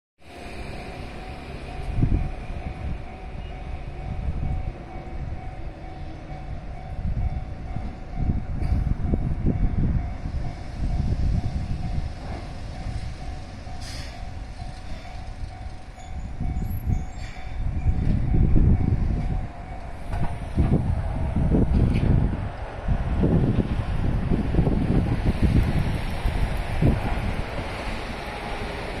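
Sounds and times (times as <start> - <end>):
train approaching: 0.2 - 29.0
wind buffeting microphone: 0.7 - 29.0.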